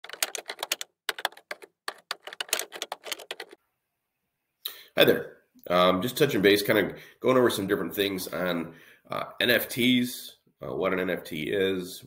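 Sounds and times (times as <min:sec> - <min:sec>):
rapid keyboard typing: 0:00.0 - 0:03.6.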